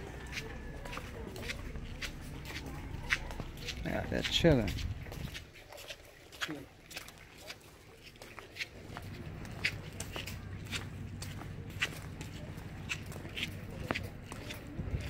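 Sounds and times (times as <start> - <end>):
footsteps walking: 0.0 - 15.0
steady low hum: 8.6 - 15.0.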